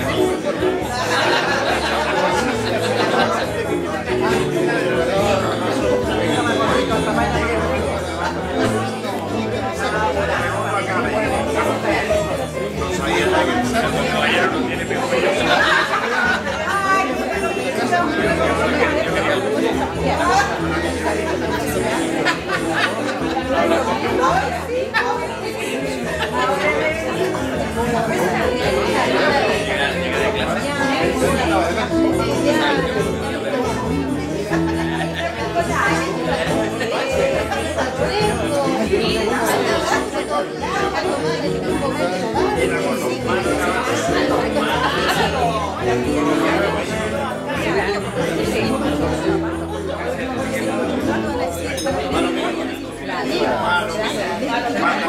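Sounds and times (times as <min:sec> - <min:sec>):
crowd of people talking: 0:00.0 - 0:55.0
party chatter: 0:00.0 - 0:55.0.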